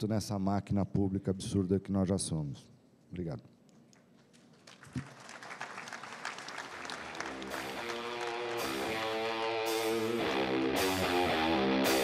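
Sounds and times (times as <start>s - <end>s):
audience applause: 4.6s - 9.9s
guitar music: 7.2s - 12.0s.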